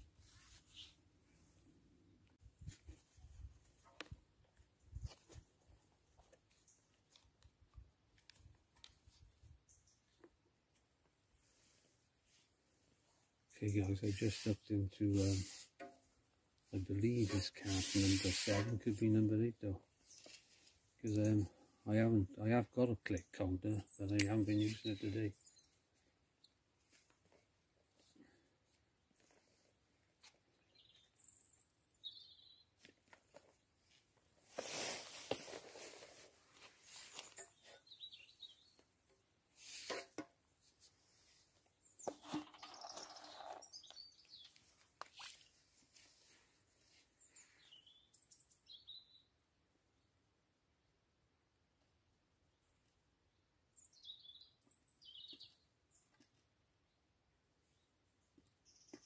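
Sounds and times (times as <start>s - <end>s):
faint bird chirps: 30.6s - 32.7s.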